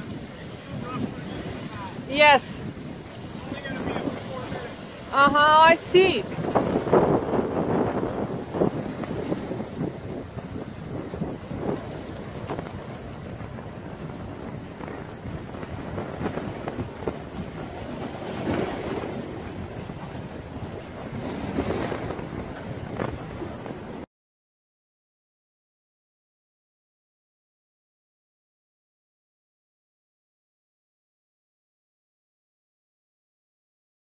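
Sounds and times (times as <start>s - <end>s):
water lapping against rocks: 0.0s - 24.0s
water splashes: 0.0s - 24.0s
wind buffeting microphone: 0.0s - 24.1s.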